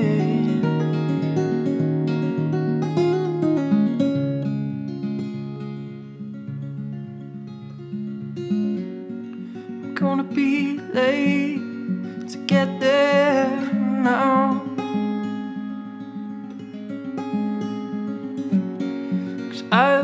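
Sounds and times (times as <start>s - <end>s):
person singing wavering phrases: 0.0s - 0.8s, 10.0s - 14.7s, 19.5s - 20.0s
acoustic guitar: 0.0s - 20.0s.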